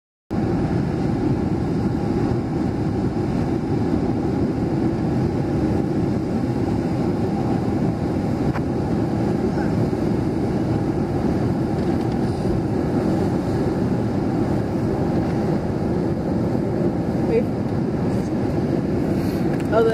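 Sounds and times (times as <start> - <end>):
low rumbling shore noise: 0.3 - 19.9.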